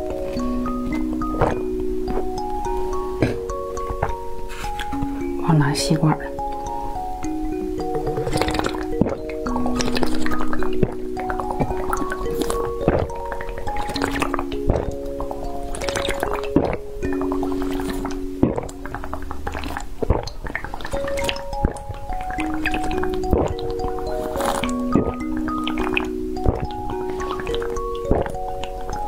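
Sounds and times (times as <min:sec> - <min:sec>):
bell-like background music: 0:00.0 - 0:20.0, 0:20.9 - 0:29.0
person gulping a drink: 0:07.8 - 0:21.8, 0:23.2 - 0:28.6.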